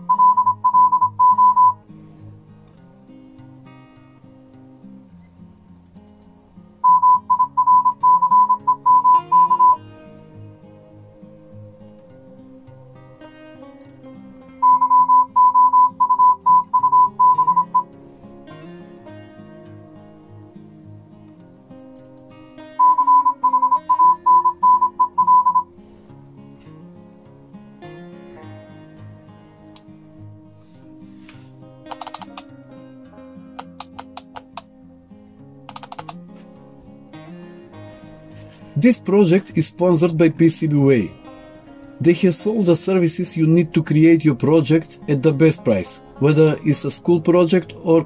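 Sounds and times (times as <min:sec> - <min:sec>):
morse code tone: 0:00.0 - 0:01.8, 0:06.8 - 0:09.8, 0:14.6 - 0:17.9, 0:22.8 - 0:25.7
soft acoustic guitar music: 0:00.0 - 0:48.0.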